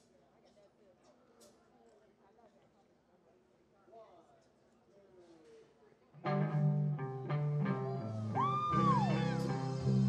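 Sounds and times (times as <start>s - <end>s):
soul band playing: 6.2s - 10.0s.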